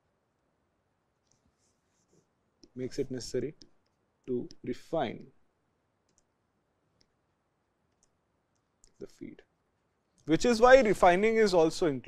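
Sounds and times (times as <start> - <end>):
person speaking: 2.6 - 5.4, 8.8 - 9.5, 10.1 - 12.0.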